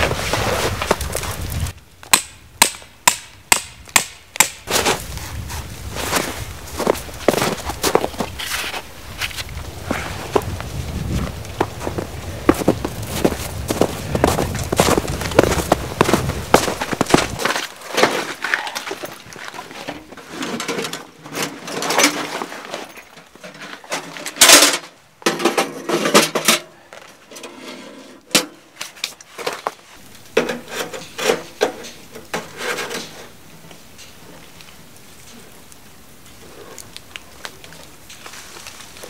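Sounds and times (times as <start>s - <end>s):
camping gear clattering: 4.6s - 34.6s
boots crunching on snow: 4.7s - 19.8s
metal stove set down on ground: 19.9s - 26.7s
short scrape: 27.3s - 28.2s.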